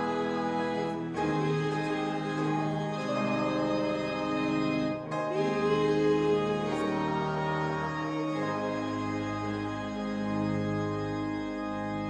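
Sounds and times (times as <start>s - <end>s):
church organ chord: 0.0s - 12.0s.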